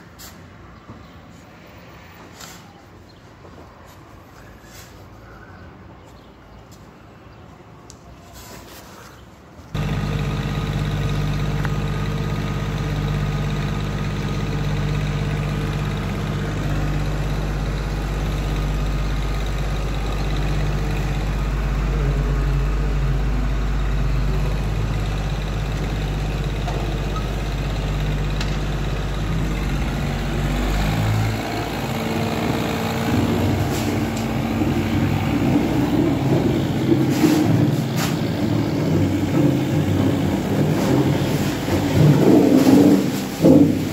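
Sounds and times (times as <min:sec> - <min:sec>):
pump engine running: 0:09.8 - 0:43.9.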